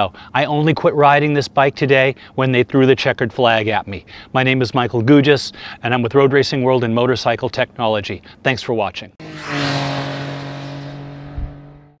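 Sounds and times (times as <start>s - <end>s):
motorcycle engine running: 9.2s - 12.0s
low thump: 11.2s - 11.8s.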